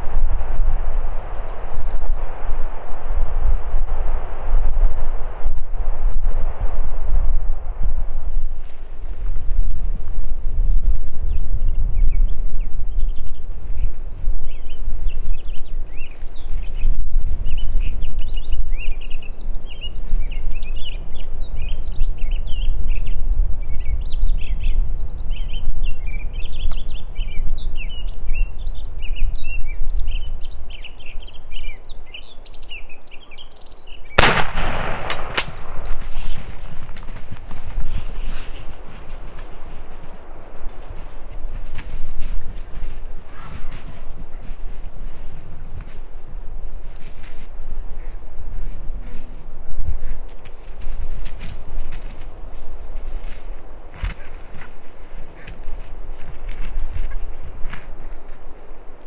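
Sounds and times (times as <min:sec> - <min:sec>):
small birds chirping: 0:01.0 - 0:02.2, 0:10.7 - 0:46.0
footsteps in brush: 0:08.5 - 0:10.0, 0:34.2 - 0:58.8
rustling in brush: 0:08.5 - 0:10.4, 0:34.2 - 0:59.0
shotgun blast: 0:34.2 - 0:36.5.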